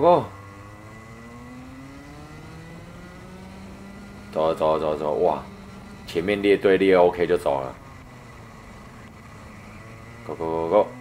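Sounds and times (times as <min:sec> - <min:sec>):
kart engine accelerating: 0:00.0 - 0:11.0.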